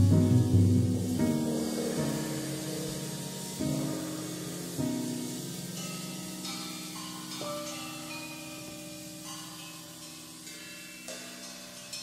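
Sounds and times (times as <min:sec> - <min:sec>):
low piano notes ringing: 0:00.0 - 0:12.0
soft cymbal strokes: 0:00.0 - 0:12.0.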